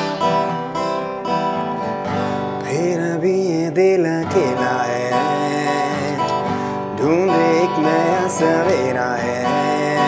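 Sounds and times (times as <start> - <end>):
acoustic guitar strumming: 0.0 - 10.0
person singing: 2.4 - 10.0.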